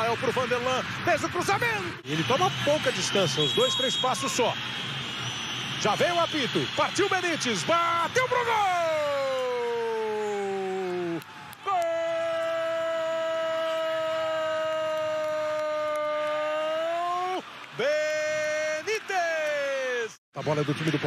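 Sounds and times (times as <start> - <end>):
commentator shouting goal cry: 7.1 - 20.2.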